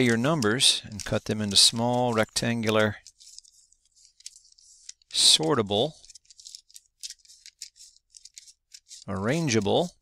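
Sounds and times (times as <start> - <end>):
scissors snipping paper: 0.0 - 10.0.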